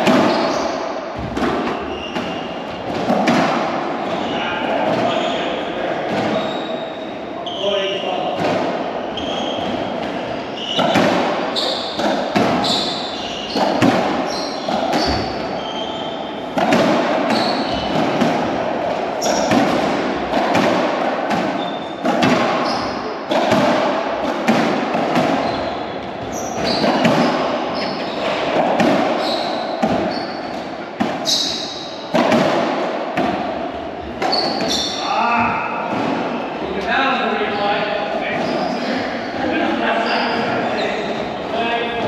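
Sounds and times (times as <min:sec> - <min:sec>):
racquetball cracking off racquets: 0:00.0 - 0:05.4, 0:08.4 - 0:36.6
shoes squeaking on wooden floor: 0:00.0 - 0:08.4, 0:09.0 - 0:18.2, 0:19.1 - 0:20.6, 0:21.3 - 0:23.8, 0:24.5 - 0:42.0.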